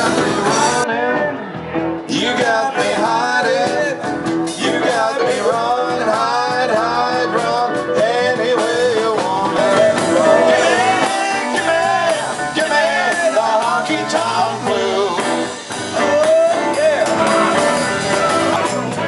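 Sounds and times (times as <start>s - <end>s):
electric guitars: 0.0s - 19.0s
keyboard: 0.0s - 19.0s
man singing lead vocal: 0.0s - 19.0s.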